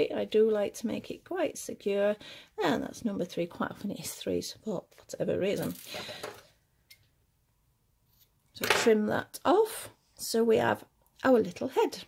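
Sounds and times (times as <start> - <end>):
hands and tools on wooden table: 5.0 - 9.1.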